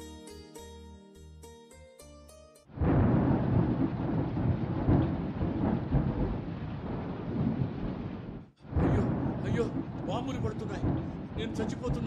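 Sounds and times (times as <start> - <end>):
music: 0.0 - 2.7.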